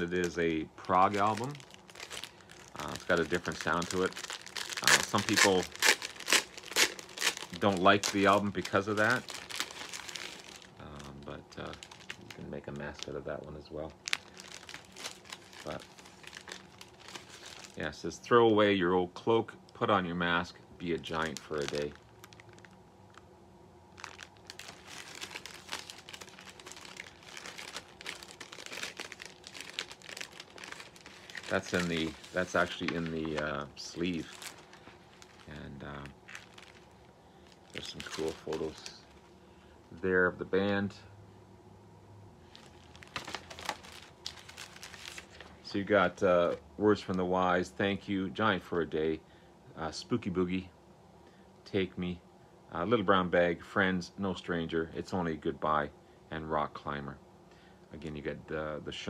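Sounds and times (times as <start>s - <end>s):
plastic sleeve crinkling: 0.0s - 18.2s, 20.8s - 23.3s, 23.9s - 39.3s, 42.4s - 47.2s.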